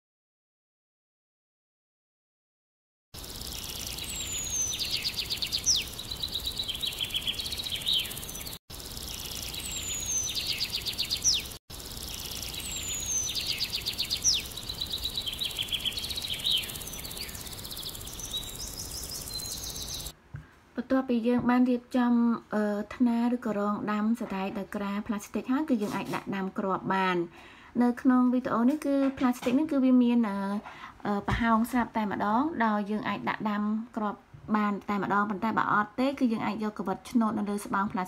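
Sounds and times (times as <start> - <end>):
songbird singing: 3.2 - 20.2.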